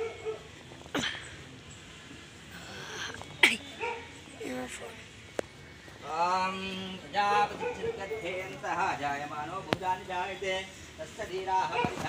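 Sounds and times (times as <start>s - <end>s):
dog barking and yelping: 7.6s - 8.1s.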